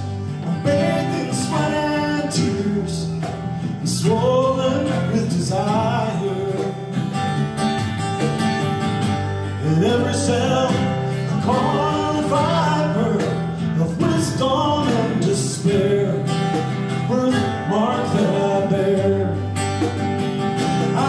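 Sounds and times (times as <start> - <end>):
acoustic guitar: 0.0 - 21.0
person singing: 0.1 - 7.0, 9.6 - 19.6.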